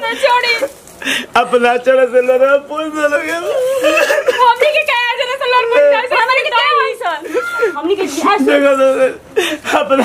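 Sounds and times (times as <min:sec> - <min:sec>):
woman wailing: 0:05.5 - 0:09.2.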